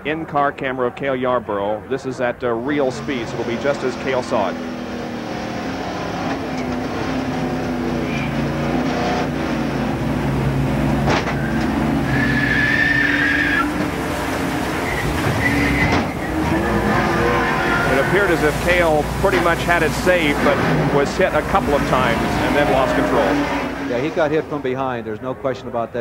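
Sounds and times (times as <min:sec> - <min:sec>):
race car engine at speed: 0:00.0 - 0:26.0
tyre squeal: 0:08.0 - 0:08.6, 0:11.3 - 0:13.9, 0:14.5 - 0:19.0.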